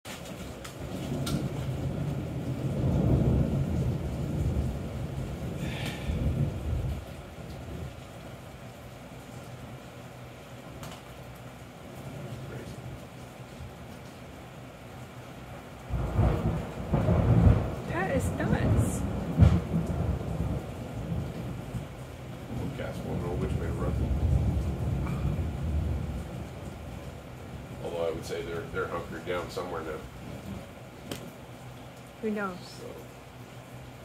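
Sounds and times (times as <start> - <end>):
steady rain: 0.0 - 34.0
thunder rumbling: 0.2 - 8.9, 15.4 - 33.1.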